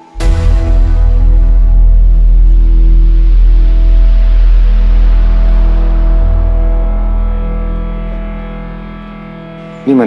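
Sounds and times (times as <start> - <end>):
dramatic orchestral music: 0.0 - 10.0
loud low drone: 0.0 - 10.0.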